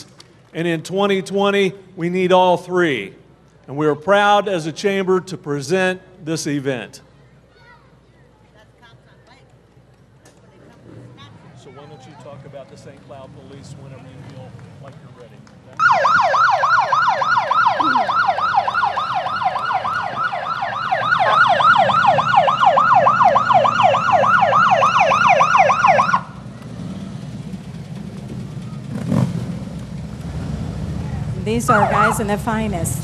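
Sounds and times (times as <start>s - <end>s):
low vehicle rumble: 9.6s - 33.0s
police siren yelping: 15.8s - 26.4s, 31.6s - 32.5s.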